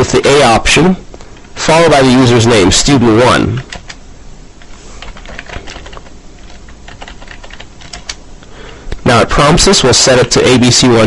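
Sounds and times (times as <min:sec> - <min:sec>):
keyboard typing: 0:03.6 - 0:04.0, 0:04.6 - 0:08.2.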